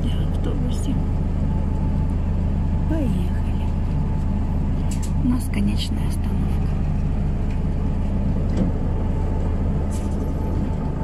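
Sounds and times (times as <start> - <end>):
bus engine running: 0.0 - 11.0.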